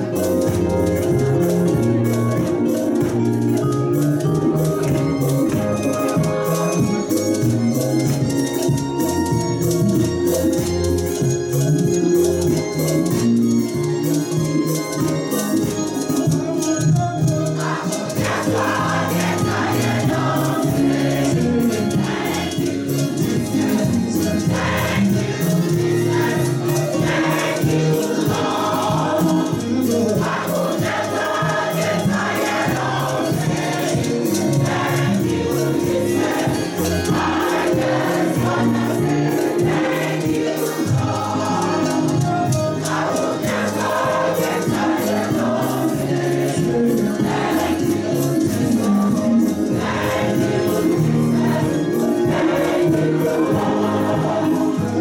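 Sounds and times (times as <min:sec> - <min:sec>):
choir singing gospel: 0:00.0 - 0:55.0
rattling hand percussion: 0:00.0 - 0:55.0.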